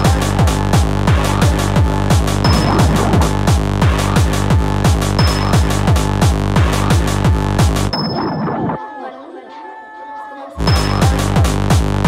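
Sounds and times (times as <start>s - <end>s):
fast kick drum: 0.0s - 7.9s, 10.6s - 12.0s.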